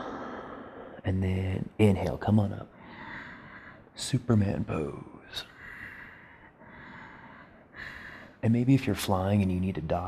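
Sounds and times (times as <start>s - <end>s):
man breathing softly: 2.7s - 4.0s, 5.5s - 8.4s.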